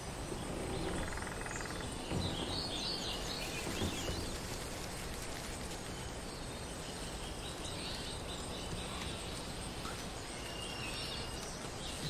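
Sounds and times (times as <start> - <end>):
rapid bird trill: 0.0 - 4.6
birds chirping: 0.0 - 12.0
steady background hiss: 0.0 - 12.0.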